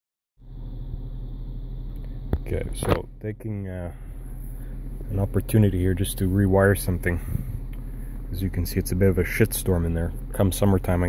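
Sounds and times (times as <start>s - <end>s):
car engine idling: 0.4s - 11.0s.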